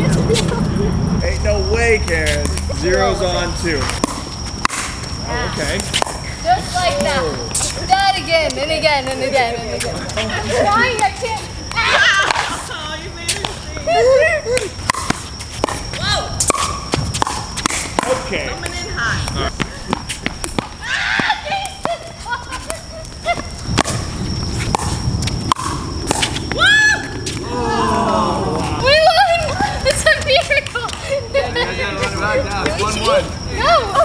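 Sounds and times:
players' voices: 0.0s - 25.0s, 25.7s - 34.0s
ball bouncing on hard court: 3.9s - 5.0s, 5.8s - 6.2s, 14.6s - 22.0s, 22.6s - 26.6s.

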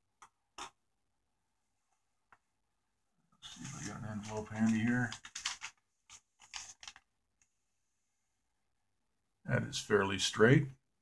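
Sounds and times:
paper envelope rustling: 3.4s - 7.1s.

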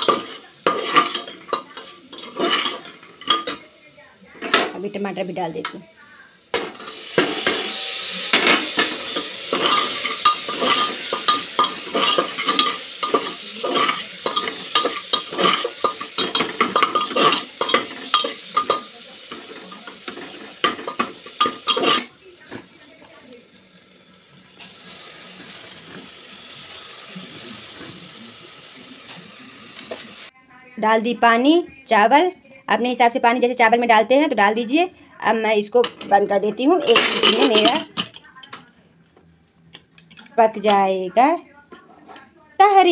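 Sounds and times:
metal ladle scraping a pot: 0.0s - 3.6s
tomatoes sizzling in hot oil: 0.0s - 3.9s, 4.8s - 30.3s.

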